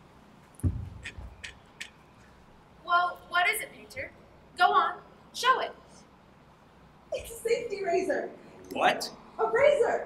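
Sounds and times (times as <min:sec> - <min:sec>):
woman speaking: 0:02.9 - 0:05.8, 0:07.1 - 0:08.4, 0:09.4 - 0:10.0.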